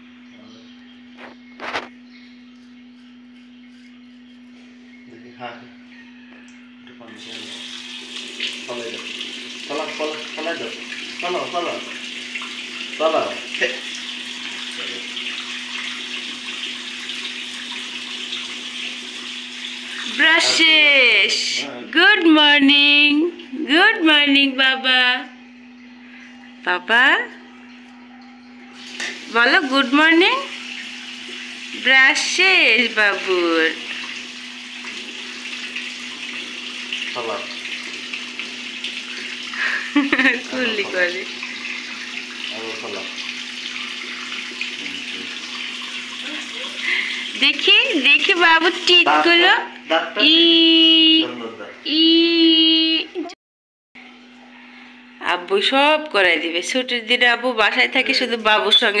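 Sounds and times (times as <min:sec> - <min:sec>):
tap water running into sink: 0:06.5 - 0:20.9, 0:27.2 - 0:49.8.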